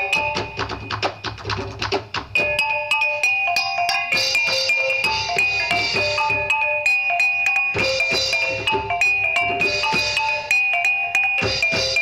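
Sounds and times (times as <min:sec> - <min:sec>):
percussion music with mallet instruments: 0:00.0 - 0:12.0.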